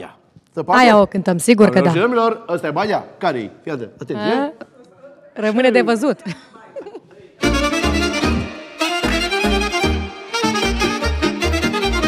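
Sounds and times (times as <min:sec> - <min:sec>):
fiddle melody: 0:07.4 - 0:12.0
folk band playing: 0:07.4 - 0:12.0.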